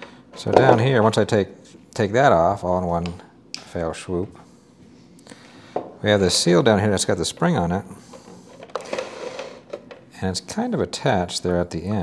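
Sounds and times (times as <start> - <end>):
plastic handling noise: 7.3 - 10.1.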